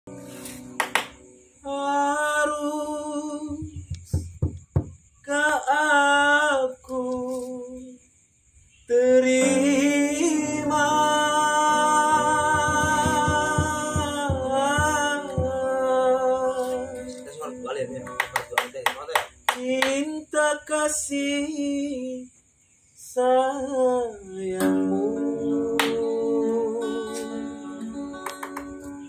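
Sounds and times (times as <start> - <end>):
sharp hand claps: 0.6 - 1.3, 18.0 - 20.1, 25.8 - 26.1, 28.2 - 29.0
man's voice: 16.6 - 20.1.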